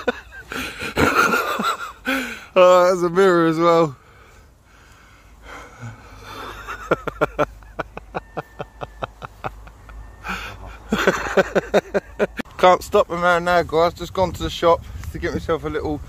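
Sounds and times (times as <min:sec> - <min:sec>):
breathy wheezing laughter: 0:00.0 - 0:02.5, 0:05.5 - 0:12.5.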